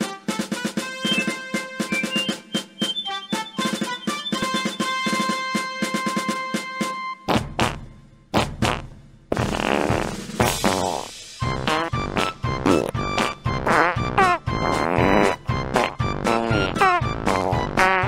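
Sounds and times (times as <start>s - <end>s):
comic ringtone melody: 0.8s - 7.2s.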